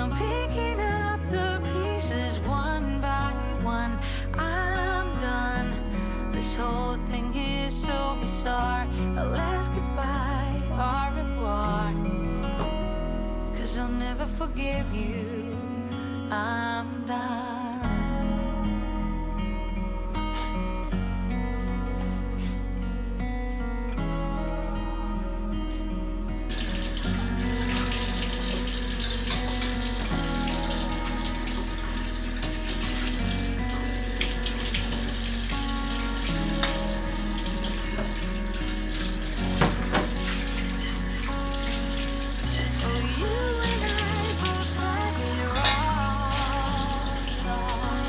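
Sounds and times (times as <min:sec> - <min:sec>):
soft background music: 0:00.0 - 0:48.0
tap water running into sink: 0:26.5 - 0:48.0.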